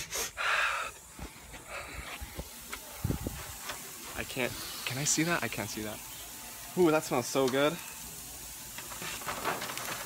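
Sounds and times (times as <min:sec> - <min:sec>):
meat sizzling on a grill: 0:00.8 - 0:10.0.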